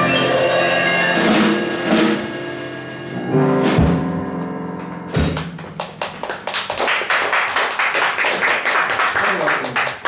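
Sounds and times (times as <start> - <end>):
audience clapping: 4.8 - 10.0.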